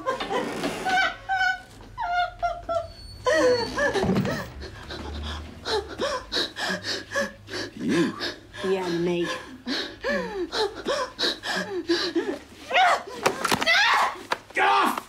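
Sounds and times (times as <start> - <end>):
woman whimpering: 2.6 - 13.2
woman breathing in ragged gasps: 4.6 - 12.4.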